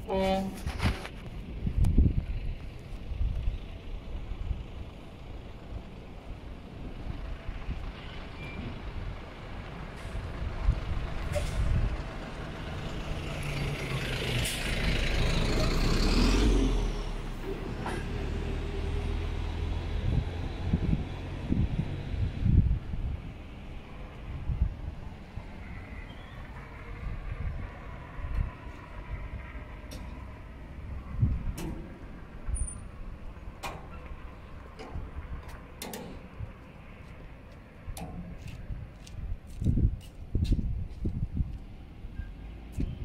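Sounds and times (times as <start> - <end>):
truck engine rumbling: 0.0 - 43.0.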